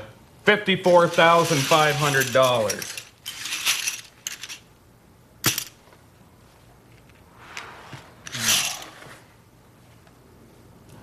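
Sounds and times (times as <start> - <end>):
poker chips clattering: 1.2 - 4.7, 8.3 - 8.9.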